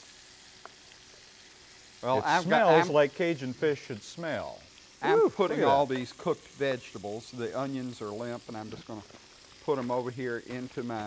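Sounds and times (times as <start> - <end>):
fish frying in oil: 0.0 - 11.0
small tick: 0.6 - 1.0.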